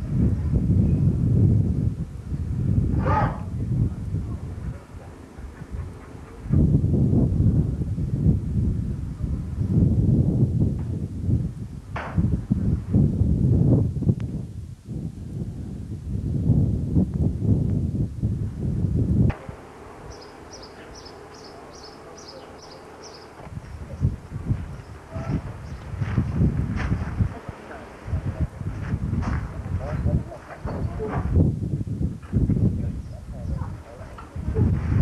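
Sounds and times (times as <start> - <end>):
low wind buffeting: 0.0 - 35.0
indistinct voices: 19.3 - 26.0, 27.1 - 28.6.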